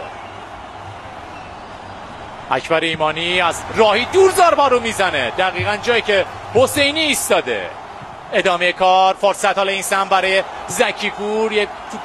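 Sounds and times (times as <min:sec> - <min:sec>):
stadium background noise: 0:00.0 - 0:12.0.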